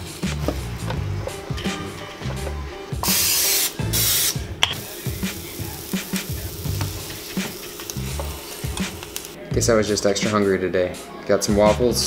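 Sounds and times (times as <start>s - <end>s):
aerosol spray hissing: 3.0s - 9.4s.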